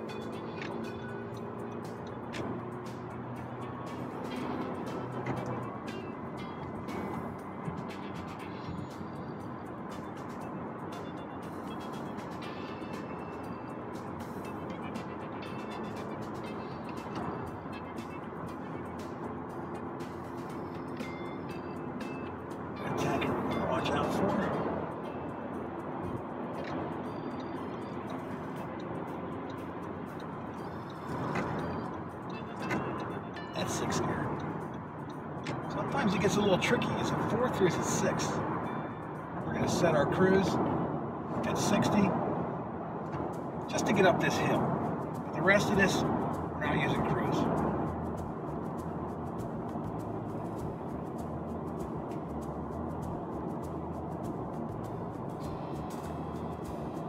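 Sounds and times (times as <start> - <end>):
background music: 0.0 - 57.0
car road and engine noise: 0.0 - 57.0.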